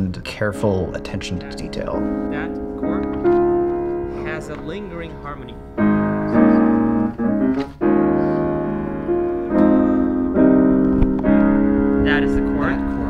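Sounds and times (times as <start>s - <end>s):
piano playing slow chords: 0.0s - 13.0s.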